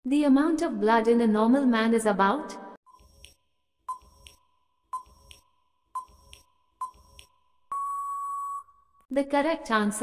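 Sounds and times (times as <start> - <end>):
timer long steady beep: 2.9 - 8.8.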